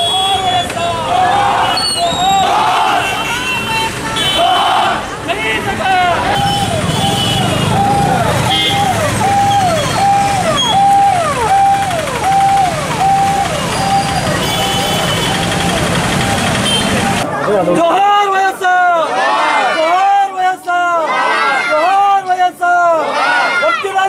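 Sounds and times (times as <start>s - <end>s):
traffic rumble: 0.0s - 17.6s
crowd shouting: 0.0s - 24.0s
police siren: 6.3s - 17.3s.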